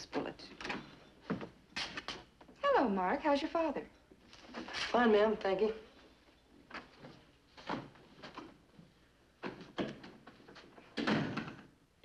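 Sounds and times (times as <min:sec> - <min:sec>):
wooden door shutting: 0:11.0 - 0:11.7.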